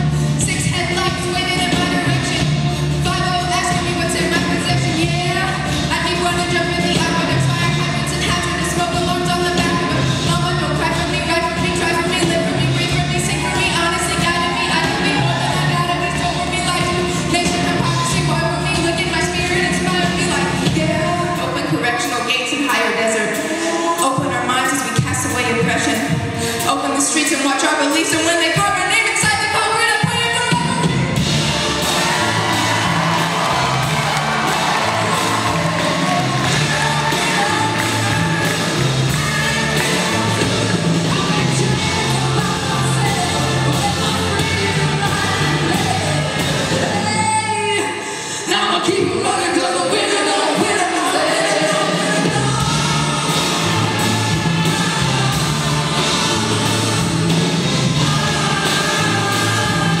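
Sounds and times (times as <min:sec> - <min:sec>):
low bass line: 0:00.0 - 0:21.2, 0:30.8 - 0:47.3, 0:52.2 - 1:00.0
orchestra and choir pop-rock music: 0:00.0 - 0:21.6, 0:30.4 - 1:00.0
choir singing: 0:31.4 - 0:44.1, 0:49.9 - 1:00.0.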